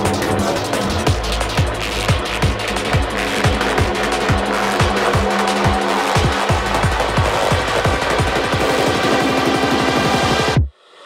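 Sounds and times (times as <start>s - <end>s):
noisy synth layer: 0.0s - 11.0s.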